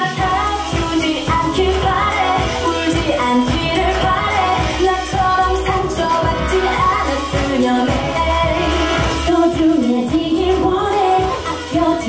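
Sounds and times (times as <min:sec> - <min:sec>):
pulsing bass beat and percussion: 0:00.0 - 0:12.0
woman singing: 0:00.0 - 0:12.0.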